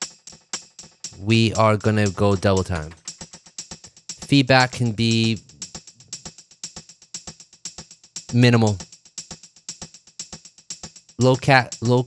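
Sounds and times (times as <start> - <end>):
shaker loop with delay: 0.0 - 12.0.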